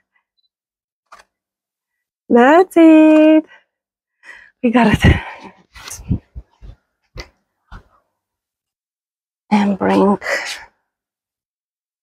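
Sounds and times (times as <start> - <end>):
person speaking: 9.5 - 10.7.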